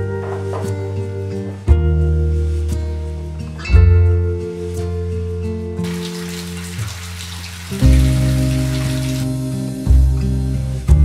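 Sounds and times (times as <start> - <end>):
soft acoustic guitar music: 0.0 - 11.0
water pouring from tap into bathtub: 5.8 - 10.0.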